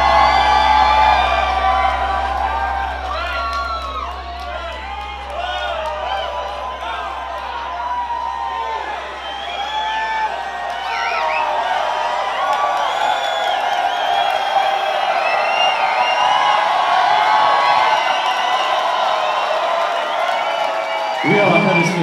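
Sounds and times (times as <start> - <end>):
crowd cheering and whooping: 0.0 - 22.0.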